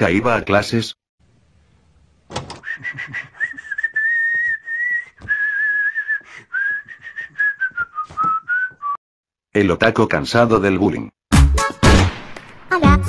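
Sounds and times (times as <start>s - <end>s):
person whistling a tune: 2.6s - 9.0s.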